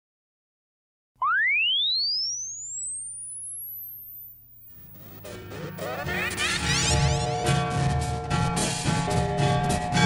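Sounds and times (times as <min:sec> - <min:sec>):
rising electronic sine tone: 0:01.2 - 0:06.8.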